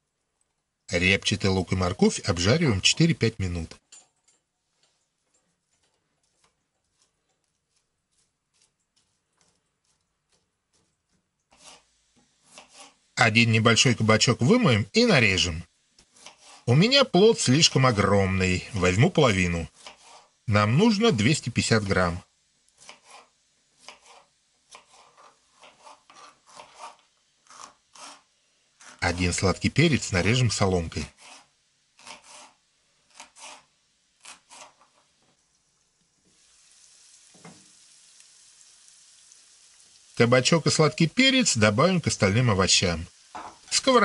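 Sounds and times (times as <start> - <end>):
knife slicing on wooden board: 5.7 - 11.9, 12.5 - 13.0, 16.0 - 16.7, 22.8 - 29.0, 31.2 - 35.0.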